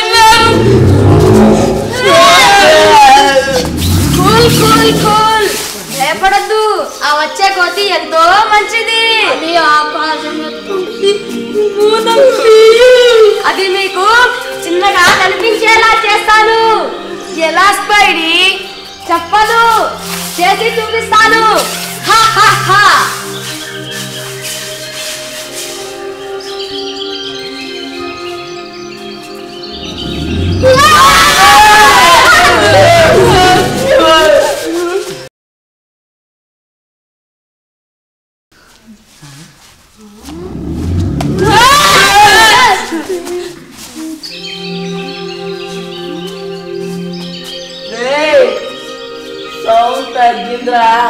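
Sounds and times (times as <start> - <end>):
background music: 0.0 - 35.3, 40.2 - 51.0
deep animal roar: 0.3 - 5.6, 29.8 - 34.0, 40.2 - 42.3.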